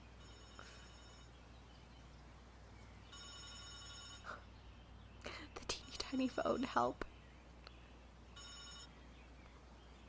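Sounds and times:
telephone bell ringing: 0.2 - 1.4, 3.1 - 4.4, 8.4 - 8.9.

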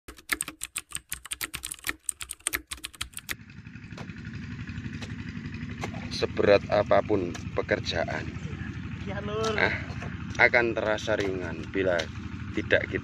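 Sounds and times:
keyboard typing clicks: 0.1 - 3.4.

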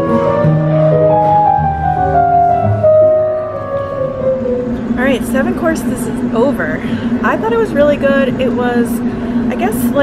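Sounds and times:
digital piano notes: 0.0 - 10.0.

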